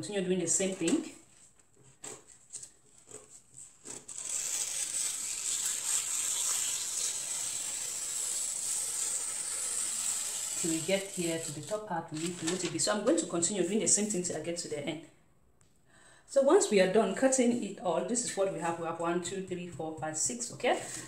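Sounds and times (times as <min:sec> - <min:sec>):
paper rustling: 0:00.6 - 0:13.3, 0:20.7 - 0:21.0
scissors cutting paper: 0:02.0 - 0:12.7.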